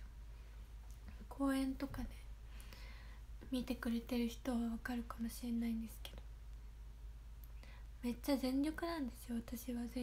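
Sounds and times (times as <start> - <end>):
low room hum: 0.0 - 10.0
soft intake of breath: 2.4 - 3.4, 7.5 - 8.0.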